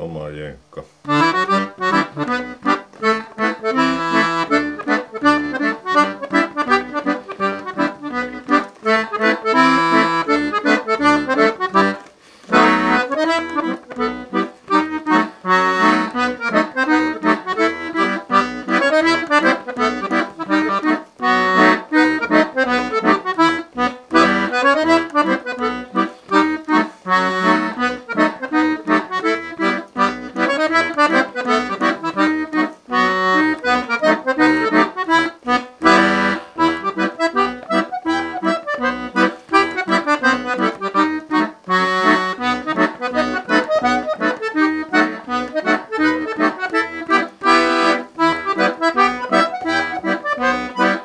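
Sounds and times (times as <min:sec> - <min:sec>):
button accordion playing: 0:01.0 - 0:51.0.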